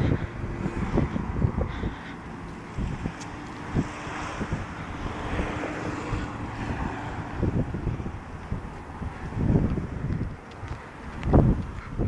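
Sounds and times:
outdoor street noise hiss: 0:00.0 - 0:12.0
wind buffeting microphone: 0:00.0 - 0:12.0.

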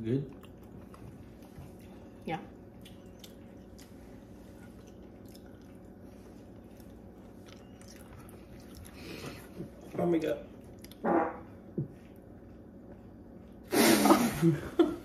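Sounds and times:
low room hum: 0:00.0 - 0:15.0
wet mouth clicks chewing: 0:02.8 - 0:04.0.

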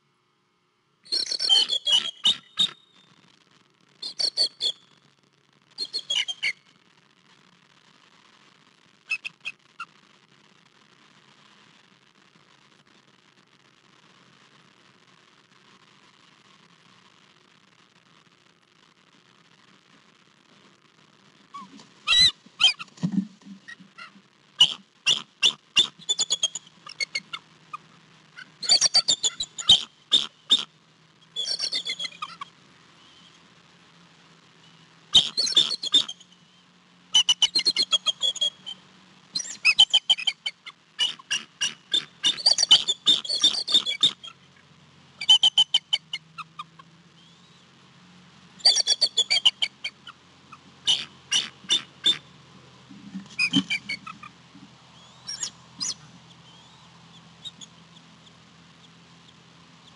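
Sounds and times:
eagle chattering calls: 0:01.1 - 0:02.8, 0:05.8 - 0:06.6, 0:09.1 - 0:09.6, 0:21.6 - 0:30.7, 0:31.4 - 0:32.5, 0:35.1 - 0:36.3, 0:37.2 - 0:38.8, 0:39.4 - 0:44.4, 0:45.2 - 0:46.8, 0:48.6 - 0:52.3, 0:53.0 - 0:59.9.

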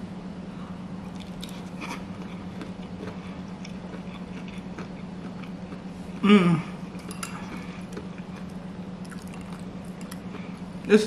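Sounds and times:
steady low hum: 0:00.0 - 0:11.0
person chewing food: 0:01.0 - 0:10.9.

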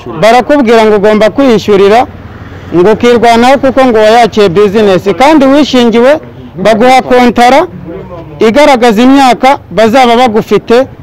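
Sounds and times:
low background noise: 0:00.0 - 0:11.0
man speaking: 0:00.0 - 0:11.0.

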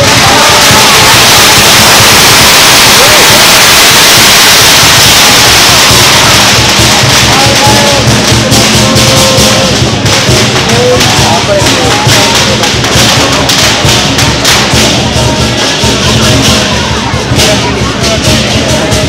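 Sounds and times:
cymbals clashing: 0:00.0 - 0:19.0
drums: 0:00.0 - 0:19.0.

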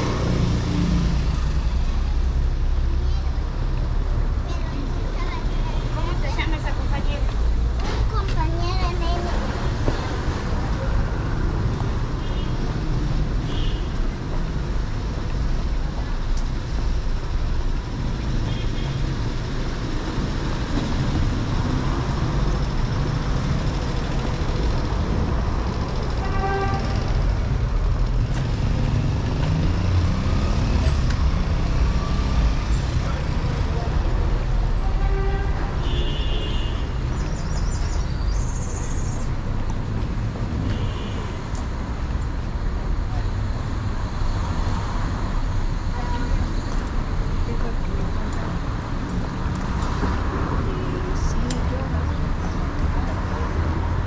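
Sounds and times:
cars passing: 0:00.0 - 0:54.0.

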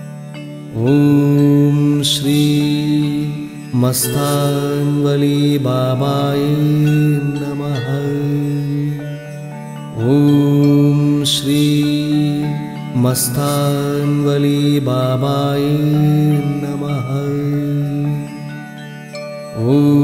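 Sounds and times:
person singing long gliding notes: 0:00.0 - 0:20.0
sustained accompaniment: 0:00.0 - 0:20.0.

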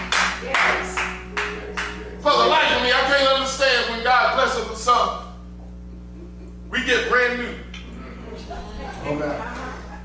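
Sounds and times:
congregation clapping rhythmically: 0:00.0 - 0:02.2
sustained musical note: 0:00.6 - 0:04.0.

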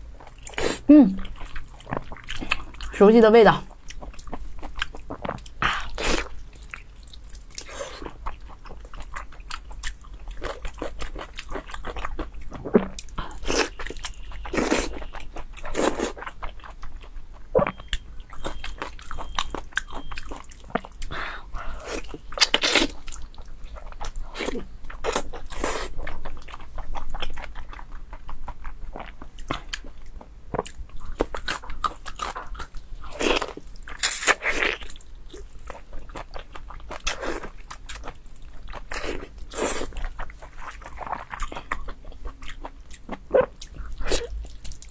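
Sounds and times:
person chewing with wet smacks: 0:00.1 - 0:03.0, 0:03.6 - 0:44.9.

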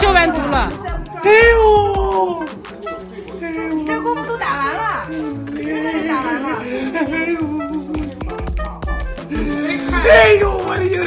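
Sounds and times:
man wailing cry: 0:01.2 - 0:02.6, 0:03.2 - 0:04.9, 0:05.6 - 0:08.3, 0:09.2 - 0:11.0.

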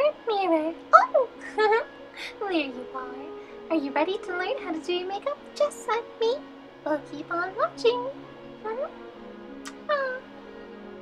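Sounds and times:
soft background music: 0:00.0 - 0:11.0
lip smack: 0:09.6 - 0:09.9
high-pitched vocal mwah: 0:09.6 - 0:10.3.

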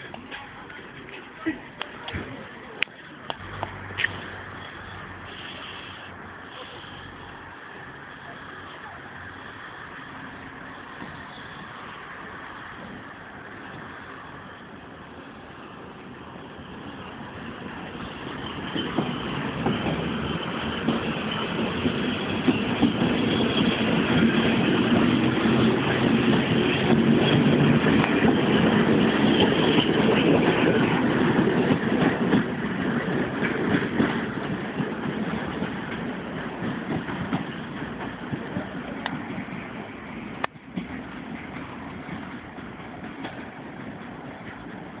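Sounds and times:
electric train passing: 0:00.0 - 0:45.0.

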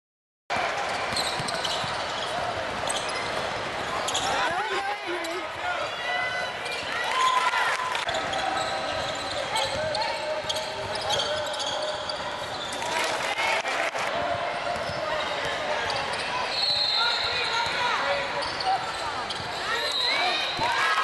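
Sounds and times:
basketball bouncing: 0:01.1 - 0:05.4, 0:14.2 - 0:15.6
shoes squeaking on gym floor: 0:01.1 - 0:05.5, 0:08.1 - 0:13.0, 0:14.8 - 0:20.6.

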